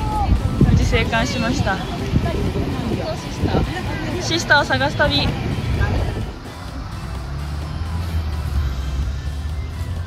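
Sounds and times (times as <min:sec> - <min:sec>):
steady low rumble: 0:00.0 - 0:09.8
background music: 0:00.0 - 0:10.0.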